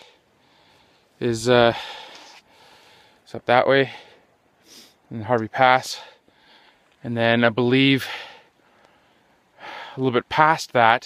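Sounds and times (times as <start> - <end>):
man breathing: 0.0 - 5.1, 5.9 - 7.0, 8.0 - 10.0
man speaking: 1.2 - 1.9, 3.3 - 4.0, 5.1 - 6.2, 7.0 - 8.2, 10.0 - 11.0.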